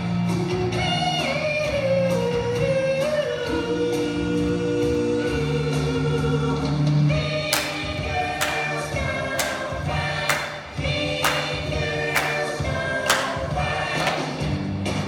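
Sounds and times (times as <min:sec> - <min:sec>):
male vocal quartet singing: 0:03.6 - 0:14.5
hand claps: 0:07.4 - 0:14.6.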